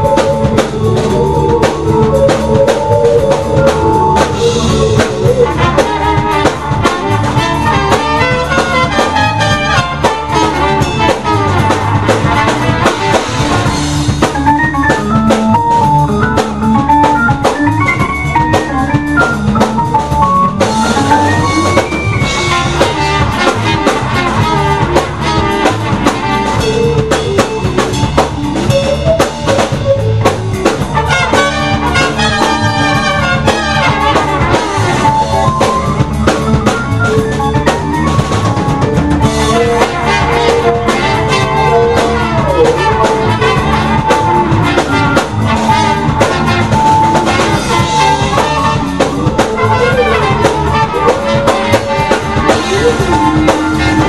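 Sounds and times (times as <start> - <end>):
bass drum and snare strokes: 0.0 - 54.0
live band music: 0.0 - 54.0.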